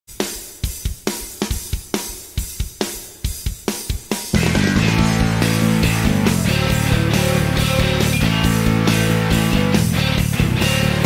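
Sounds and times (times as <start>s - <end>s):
rock drum kit playing: 0.1s - 11.0s.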